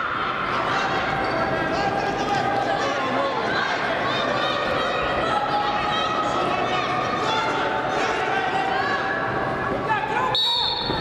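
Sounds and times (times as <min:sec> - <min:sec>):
referee's whistle blast: 0:10.3 - 0:11.0.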